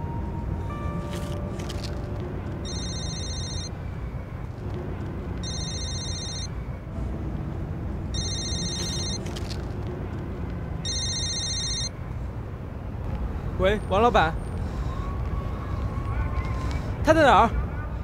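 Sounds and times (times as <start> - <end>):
trilling phone ringtone: 2.6 - 3.8, 5.4 - 6.6, 8.1 - 9.3, 10.8 - 12.0.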